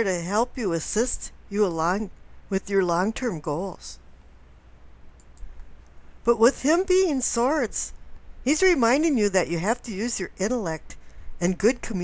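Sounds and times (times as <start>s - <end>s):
faint short clicks: 5.2s - 6.0s.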